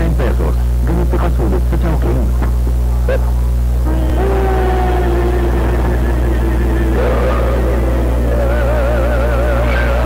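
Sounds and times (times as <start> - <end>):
low electrical hum: 0.0 - 10.0
person speaking: 3.8 - 9.6.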